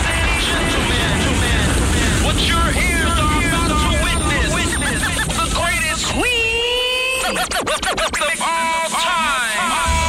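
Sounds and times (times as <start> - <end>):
turntable scratching: 0.0 - 10.0
chopped voice snippets: 0.1 - 10.0
music: 7.6 - 10.0.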